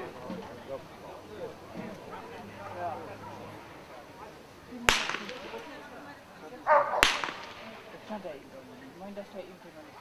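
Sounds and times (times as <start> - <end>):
pistol shot: 4.9 - 5.8, 7.0 - 7.8.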